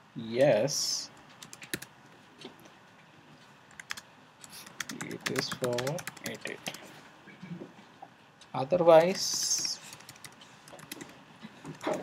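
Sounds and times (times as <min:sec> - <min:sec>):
computer keyboard typing: 0:01.4 - 0:01.9, 0:03.7 - 0:06.9, 0:09.0 - 0:12.0.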